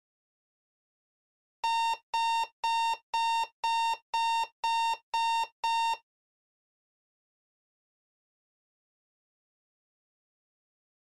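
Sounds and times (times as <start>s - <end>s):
digital alarm clock beeping: 1.6s - 6.0s.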